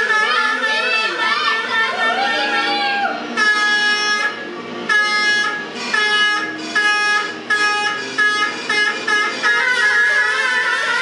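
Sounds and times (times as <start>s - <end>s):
plastic fan horns tooting: 0.0s - 11.0s.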